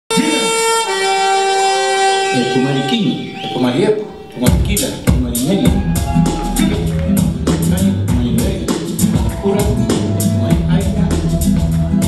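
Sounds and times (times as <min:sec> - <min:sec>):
electronic instrument tone: 0:00.3 - 0:06.9.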